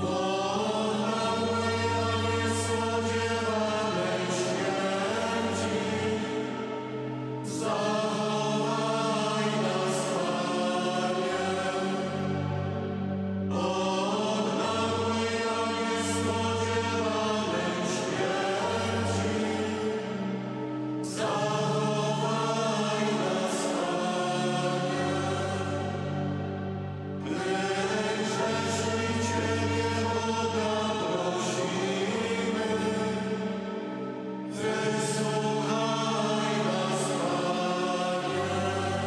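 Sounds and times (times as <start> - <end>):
mixed choir singing a slow hymn: 0.0 - 39.0.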